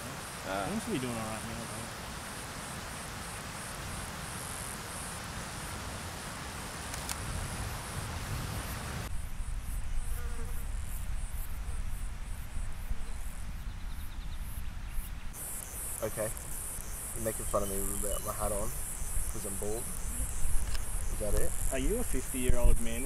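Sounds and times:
background hiss: 0.0 - 23.0
insects chirping: 0.0 - 23.0.

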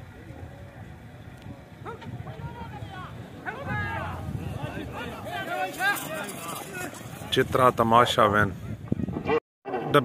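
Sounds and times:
outdoor background noise: 0.0 - 10.0
people talking and calling out: 0.0 - 10.0.

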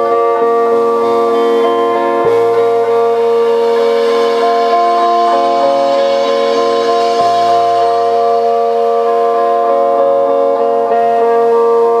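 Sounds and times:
live band droning chords: 0.0 - 12.0.

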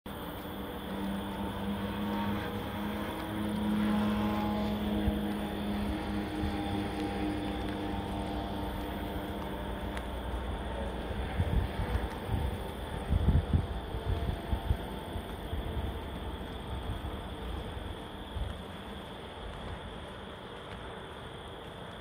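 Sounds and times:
vehicle engine running: 0.1 - 21.3
road noise: 0.1 - 22.0
wind gusts on microphone: 1.4 - 20.3.

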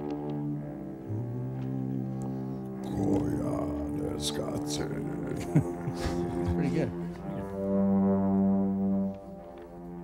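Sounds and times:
low brass-like note: 6.8 - 10.0.

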